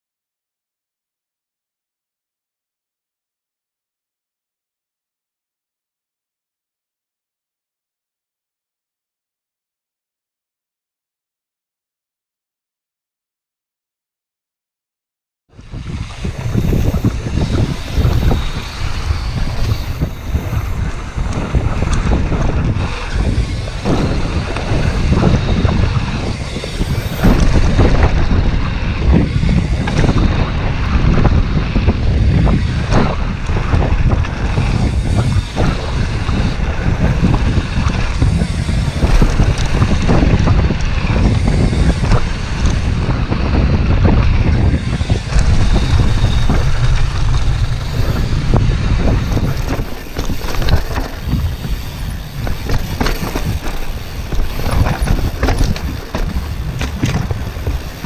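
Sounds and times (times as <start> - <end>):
bike rattling and knocking: 15.6 - 58.0
wind buffeting microphone: 15.6 - 58.0
tyres rumbling on gravel: 15.8 - 58.0.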